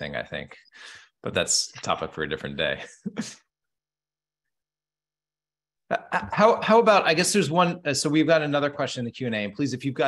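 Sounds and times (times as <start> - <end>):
person laughing: 5.9 - 6.4.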